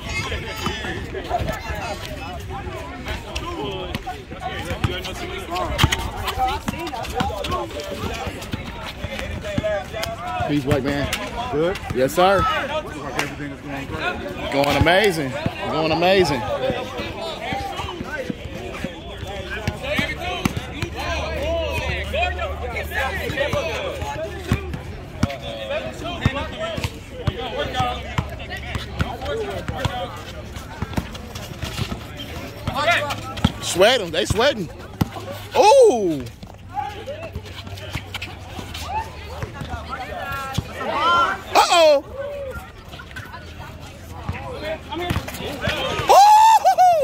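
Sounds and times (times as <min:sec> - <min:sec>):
spectators chattering: 0:00.0 - 0:47.0
loud high drawn-out shout: 0:46.0 - 0:47.0.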